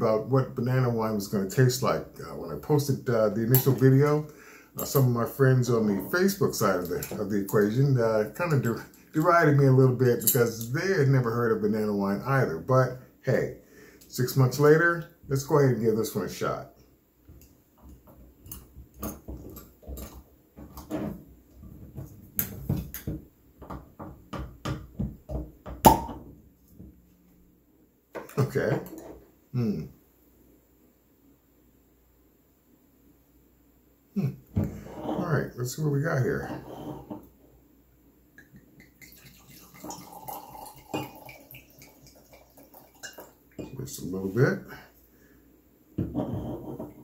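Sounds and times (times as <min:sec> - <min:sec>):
wine pouring into a glass: 0:38.8 - 0:43.8
glass clinks: 0:40.1 - 0:41.4.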